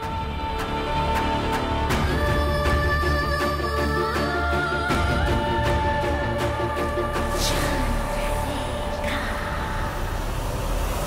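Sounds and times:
low rumbling dramatic score: 0:00.0 - 0:11.0.

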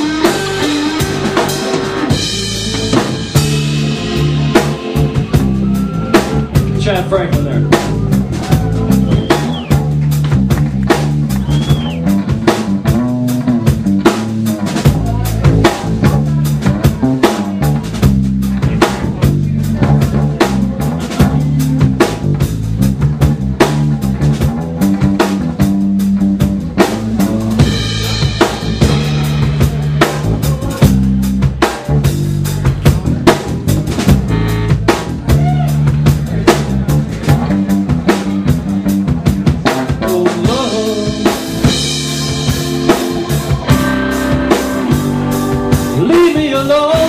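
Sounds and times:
drum kit: 0:00.0 - 0:47.0
electric guitars: 0:00.0 - 0:47.0
live blues-rock band: 0:00.0 - 0:47.0.

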